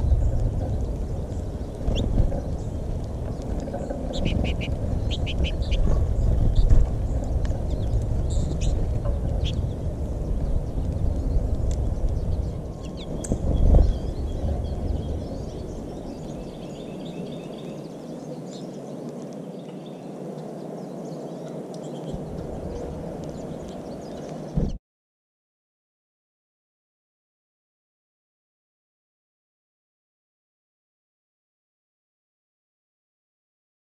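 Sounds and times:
finches chirping: 0:00.0 - 0:24.7
low rumbling noise: 0:00.0 - 0:24.8.

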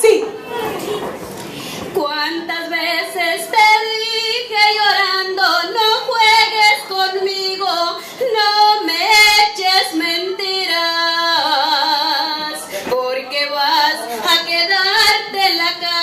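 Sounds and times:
woman singing into microphone: 0:01.9 - 0:16.0.

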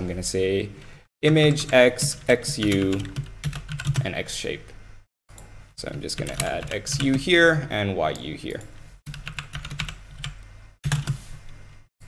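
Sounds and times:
typing on computer keyboard: 0:01.6 - 0:04.0, 0:06.2 - 0:07.2, 0:09.1 - 0:11.2.

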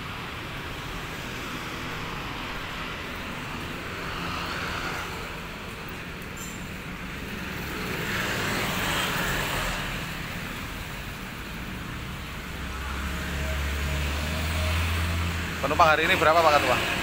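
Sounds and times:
vehicle rushing past: 0:12.4 - 0:17.0.

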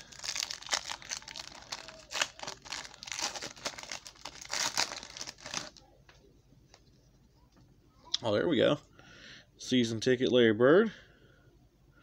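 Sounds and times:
card pack wrapper crinkling: 0:00.0 - 0:05.8.

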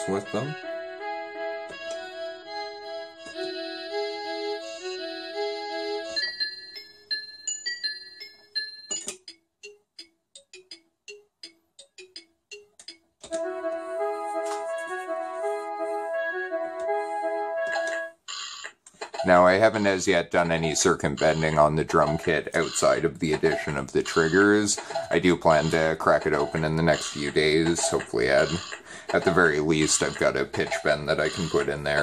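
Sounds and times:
electronic drum pitched notes: 0:19.2 - 0:32.0.

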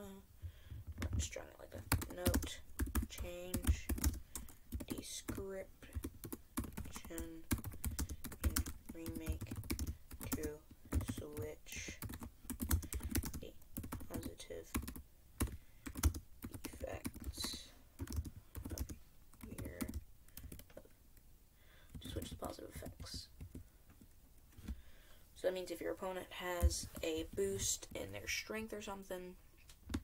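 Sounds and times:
computer keyboard typing: 0:00.9 - 0:20.8, 0:21.9 - 0:23.6.

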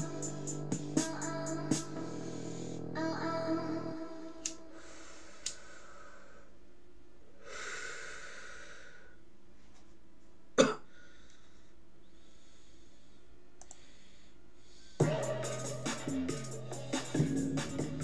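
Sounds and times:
person exhaling: 0:02.0 - 0:02.9, 0:04.2 - 0:06.5, 0:07.4 - 0:09.2
person inhaling: 0:02.0 - 0:02.9, 0:04.2 - 0:06.5, 0:07.4 - 0:09.2, 0:10.9 - 0:15.0
person coughing: 0:10.6 - 0:10.9.

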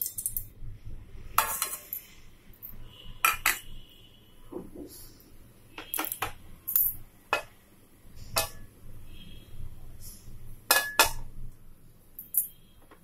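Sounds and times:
cookware clinking: 0:01.4 - 0:02.0, 0:03.2 - 0:03.6, 0:08.4 - 0:08.7, 0:10.7 - 0:11.3.

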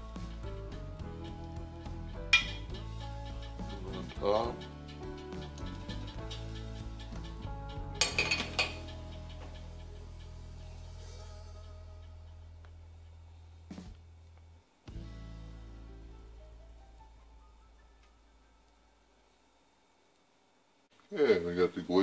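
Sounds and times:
background music: 0:00.0 - 0:14.2, 0:14.8 - 0:19.2
metal spoon clinking on glass dish: 0:02.4 - 0:02.7, 0:08.0 - 0:08.9.

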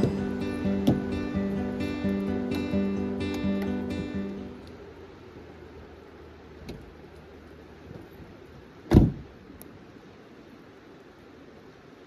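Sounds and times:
car door shutting: 0:00.0 - 0:01.3, 0:08.9 - 0:09.3.

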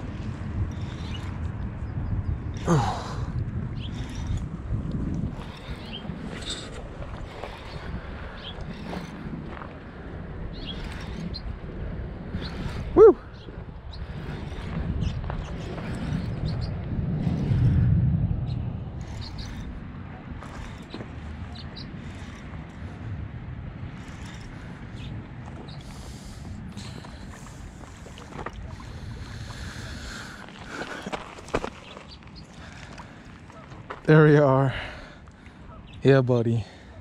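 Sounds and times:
wind rumble: 0:00.0 - 0:37.0
person shouting whoo: 0:13.0 - 0:13.2.

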